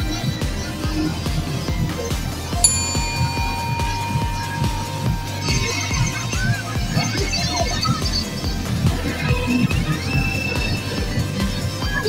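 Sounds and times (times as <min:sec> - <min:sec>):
sharp bell-like hit ringing: 0:02.6 - 0:07.7.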